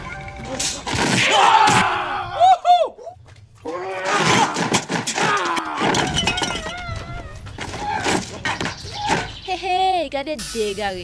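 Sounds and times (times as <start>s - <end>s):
men yelling and shouting: 1.2s - 7.0s.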